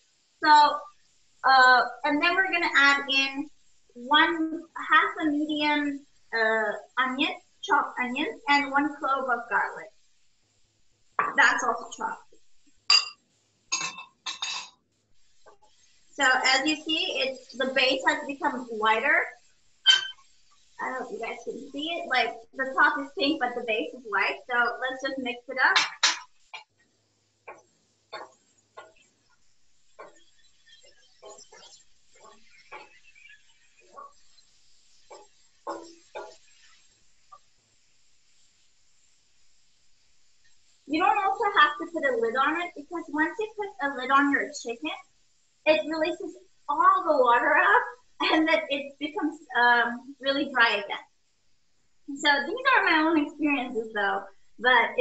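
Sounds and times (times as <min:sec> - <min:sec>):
chicken frying hiss: 0:00.0 - 0:55.0
wooden spatula scraping a pan: 0:27.4 - 0:38.5.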